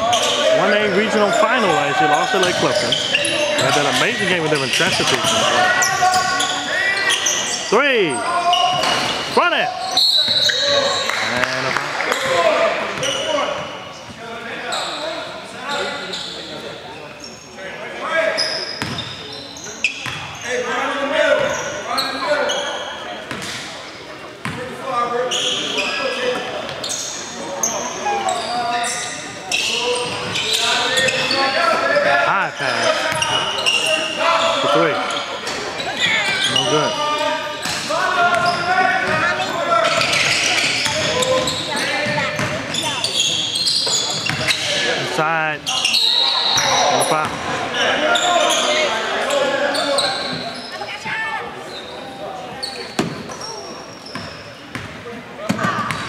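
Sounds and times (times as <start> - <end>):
players shouting: 0.0 - 13.5.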